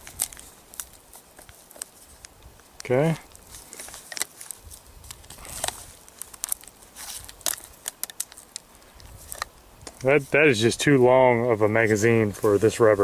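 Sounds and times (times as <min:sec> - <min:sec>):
latex rustling and crackling: 0:00.0 - 0:13.0.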